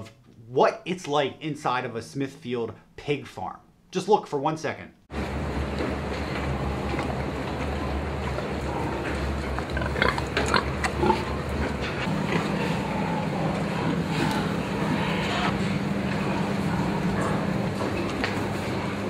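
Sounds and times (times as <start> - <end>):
low mechanical hum: 5.1 - 19.0
pigs calling: 8.6 - 18.0.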